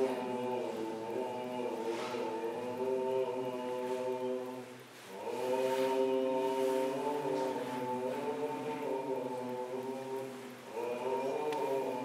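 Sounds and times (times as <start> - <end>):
choir singing slow chant: 0.0 - 12.0.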